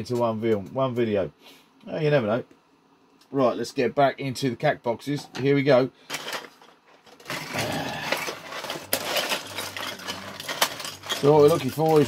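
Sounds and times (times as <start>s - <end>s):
plastic parts clattering: 5.3s - 12.0s.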